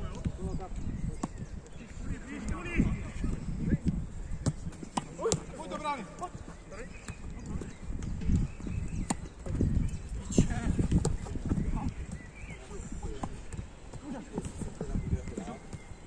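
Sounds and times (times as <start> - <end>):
ball kicks: 3.3 - 6.4.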